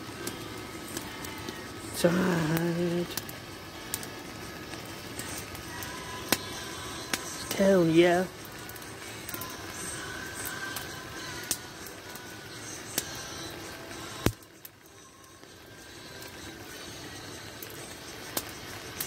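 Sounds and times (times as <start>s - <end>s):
sharp pops from fire: 0.0s - 15.6s, 17.4s - 19.0s
campfire crackling: 0.0s - 19.0s
faint background music: 0.0s - 19.0s.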